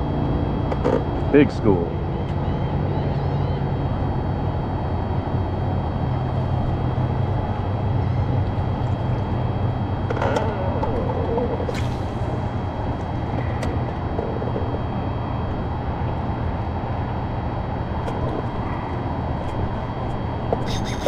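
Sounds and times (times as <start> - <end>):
boat engine low hum: 0.0 - 21.0.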